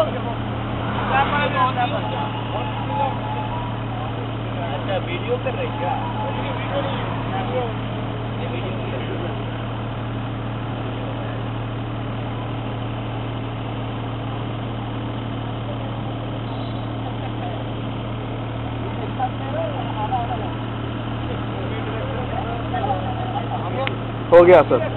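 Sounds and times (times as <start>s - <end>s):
faint voices talking: 0.0s - 24.9s
low engine hum: 0.0s - 24.9s.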